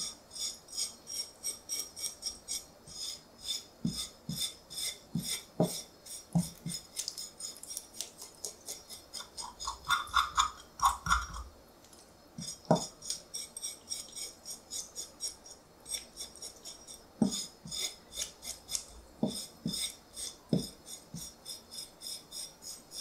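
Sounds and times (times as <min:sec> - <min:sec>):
knife scraping fish skin: 0:00.3 - 0:11.5, 0:12.4 - 0:23.0.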